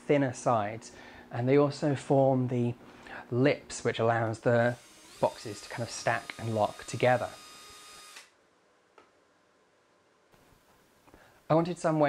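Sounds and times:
cordless drill driving screw: 0:04.8 - 0:08.4.

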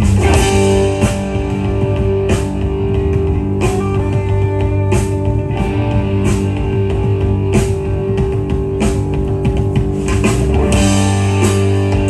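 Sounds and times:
bass guitar: 0:00.0 - 0:12.0
drum and cymbal hits: 0:00.0 - 0:12.0
electric guitar chords: 0:00.0 - 0:12.0.

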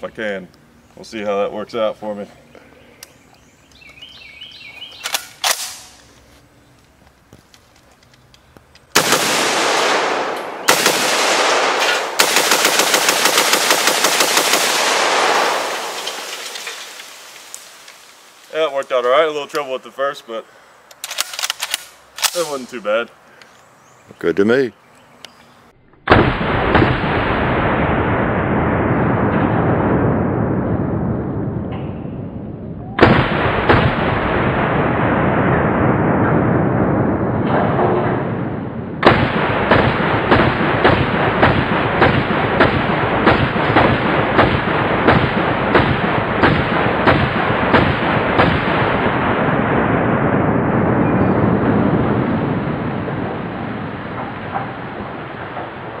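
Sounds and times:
rifle shots with heavy echo: 0:08.9 - 0:17.8, 0:26.1 - 0:30.0, 0:33.0 - 0:55.8.

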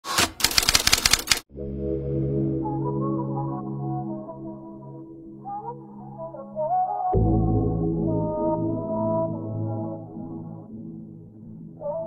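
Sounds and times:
typewriter key clicks: 0:00.0 - 0:01.4
intro music with held notes: 0:01.5 - 0:12.0.

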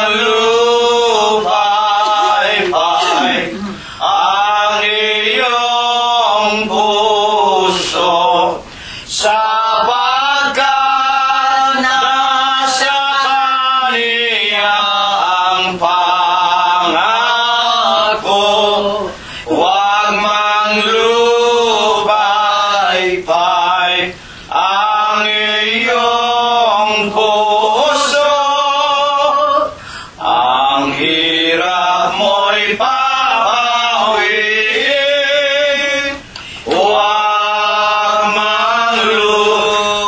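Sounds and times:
congregation singing a hymn: 0:00.0 - 0:40.0
short breath: 0:03.5 - 0:04.0, 0:08.6 - 0:09.1, 0:19.2 - 0:19.5, 0:24.2 - 0:24.5, 0:29.8 - 0:30.2, 0:36.3 - 0:36.7.

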